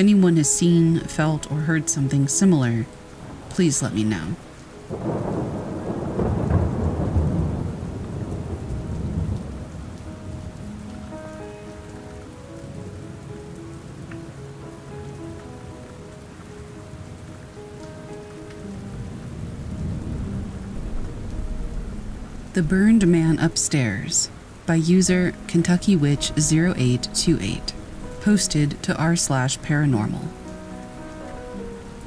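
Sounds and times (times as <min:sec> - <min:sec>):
steady rain falling: 0:00.0 - 0:32.0
rolling thunder rumble: 0:03.2 - 0:11.3, 0:18.0 - 0:24.2.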